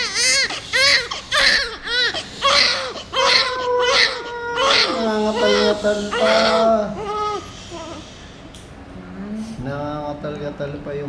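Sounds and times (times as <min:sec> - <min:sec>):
newborn baby crying: 0:00.0 - 0:08.1.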